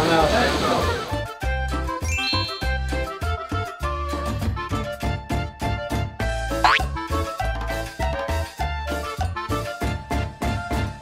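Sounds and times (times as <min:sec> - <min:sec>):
upbeat background music: 0:01.0 - 0:11.0.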